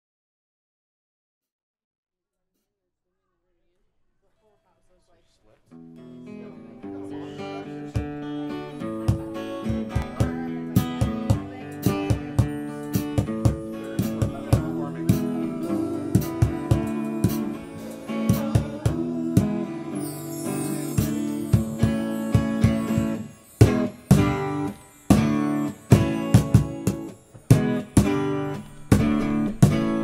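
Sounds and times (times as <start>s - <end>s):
electric guitar: 5.8s - 30.0s
strummed acoustic guitar: 5.8s - 30.0s
drums steady beat: 9.0s - 19.7s, 21.0s - 30.0s.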